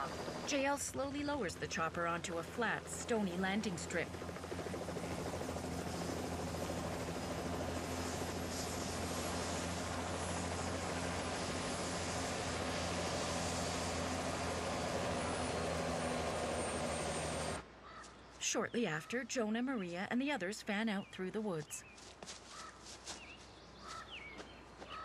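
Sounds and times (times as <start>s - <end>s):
helicopter engine and rotor: 0.0s - 17.6s.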